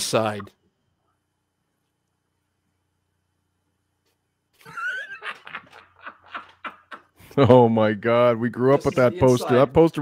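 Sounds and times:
man laughing: 0:04.6 - 0:07.6.

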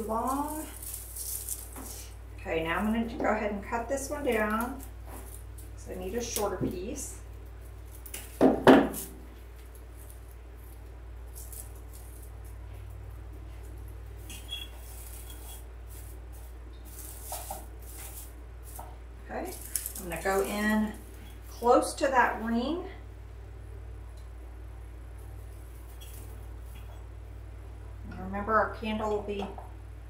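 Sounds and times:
plastic pine handling sounds: 0:00.0 - 0:02.2, 0:04.2 - 0:21.7.

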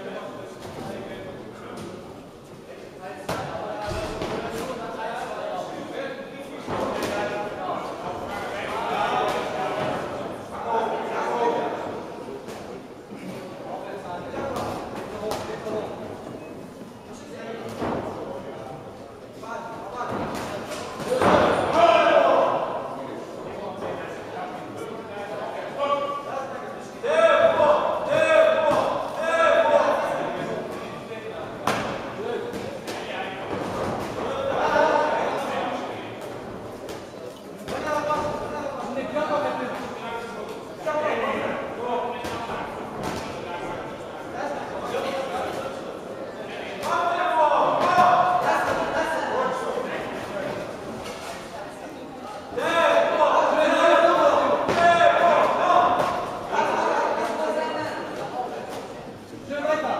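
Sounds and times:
shouting voices echoing: 0:21.1 - 0:23.0, 0:27.0 - 0:30.4, 0:52.5 - 0:58.0.

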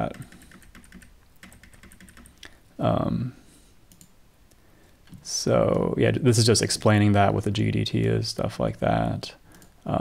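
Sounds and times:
keyboard keys clicking: 0:00.1 - 0:02.3.

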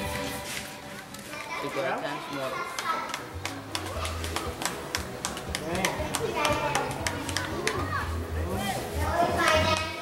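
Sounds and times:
people and children talking: 0:01.0 - 0:10.0.

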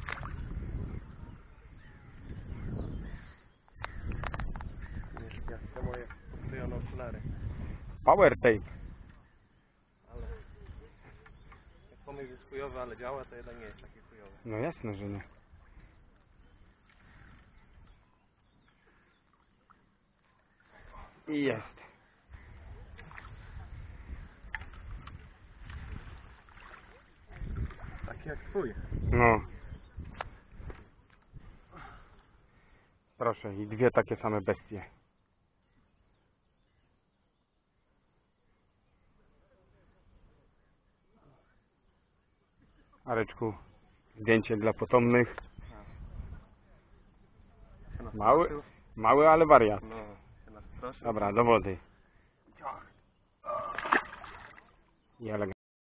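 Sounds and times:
water splashing and dripping: 0:00.0 - 0:00.6, 0:24.4 - 0:28.3, 0:53.6 - 0:54.9
low rumble on microphone: 0:03.9 - 0:09.2, 0:27.2 - 0:32.0.

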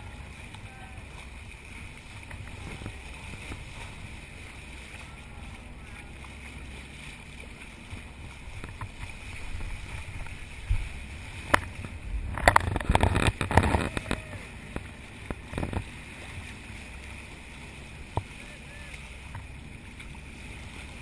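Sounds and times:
low rumble: 0:00.0 - 0:21.0
water rushing at boat bow: 0:00.0 - 0:21.0.

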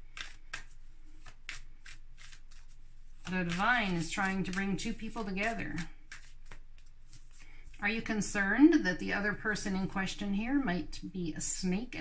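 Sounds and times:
cards being shuffled: 0:00.0 - 0:07.8.

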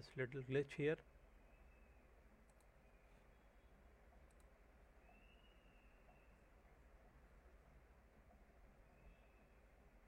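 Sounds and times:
faint computer mouse clicks: 0:02.4 - 0:02.8, 0:04.1 - 0:04.6.

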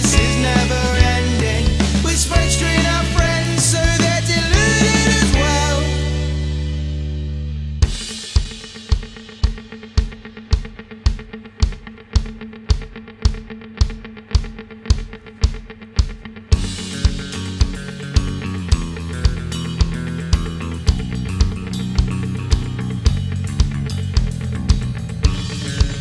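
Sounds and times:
drum kit steady beat: 0:00.0 - 0:07.1, 0:07.8 - 0:26.0
held guitar and bass tones: 0:00.0 - 0:26.0
indie rock band playing: 0:00.0 - 0:26.0.

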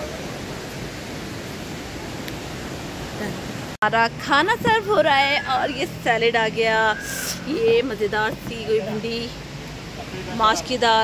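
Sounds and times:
rushing river water: 0:00.0 - 0:11.0.

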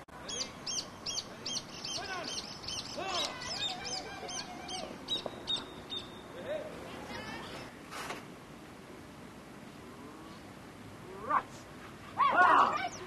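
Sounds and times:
distant shouts: 0:00.3 - 0:07.7, 0:11.0 - 0:13.0.

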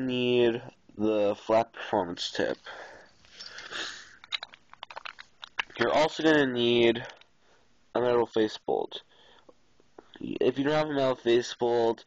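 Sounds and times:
soft rustling hiss: 0:00.0 - 0:12.0.

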